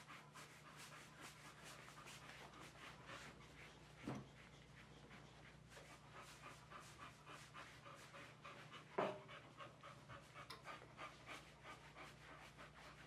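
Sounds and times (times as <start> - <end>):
dog panting: 0.0 - 13.0.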